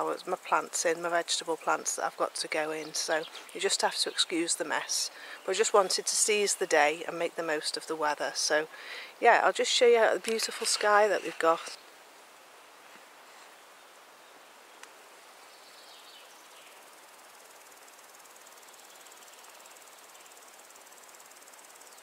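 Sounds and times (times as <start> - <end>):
insect chirring: 2.4 - 12.0, 15.2 - 22.0.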